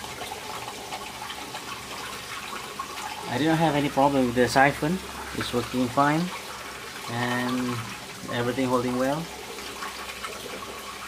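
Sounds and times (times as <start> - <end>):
water pouring and splashing into tank: 0.0 - 11.0.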